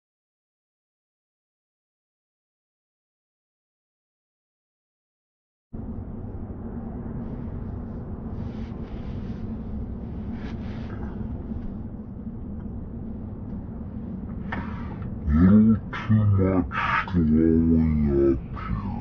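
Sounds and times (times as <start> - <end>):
faint low hum: 5.8 - 19.0
road and tyre rumble: 5.8 - 19.0
voice-like sound: 14.4 - 19.0.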